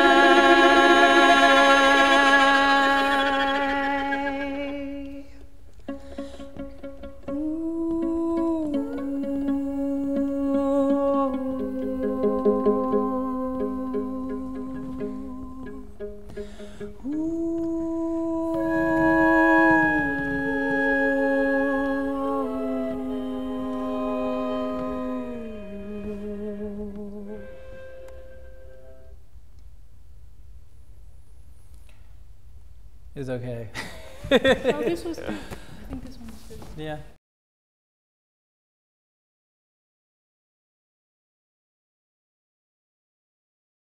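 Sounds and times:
voices singing in close harmony: 0:00.0 - 0:05.1, 0:07.3 - 0:16.2, 0:17.0 - 0:28.4.

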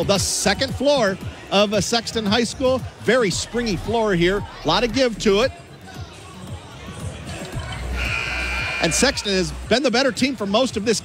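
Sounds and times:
gym background noise: 0:00.0 - 0:11.0
scoreboard buzzer: 0:08.0 - 0:09.1.

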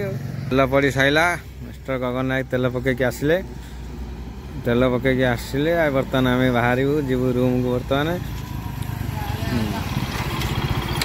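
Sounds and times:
motorcycle engine approaching: 0:00.0 - 0:11.0.

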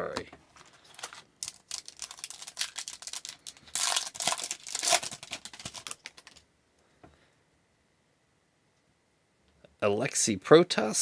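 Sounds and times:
card pack wrapper tearing: 0:00.6 - 0:06.4.

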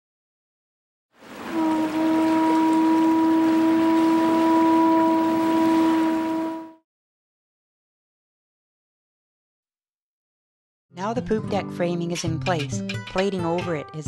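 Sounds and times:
boat horn blast: 0:01.3 - 0:06.8.

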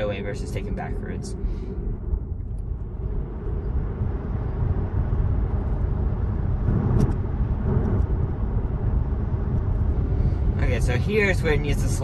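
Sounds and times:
road and tyre noise in car cabin: 0:00.0 - 0:12.0.

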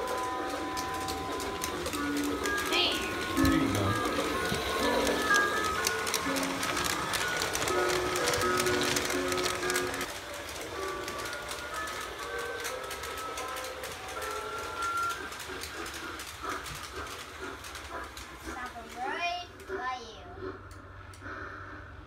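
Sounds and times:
electronic toy melody: 0:00.0 - 0:10.0
toy train clicking on track: 0:00.0 - 0:21.4.

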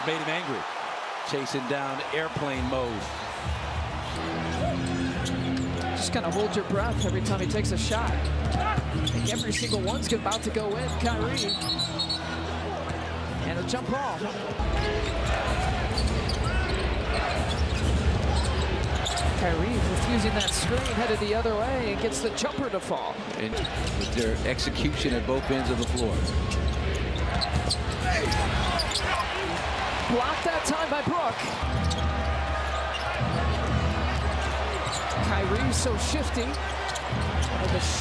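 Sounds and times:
crowd noise: 0:00.0 - 0:38.0.

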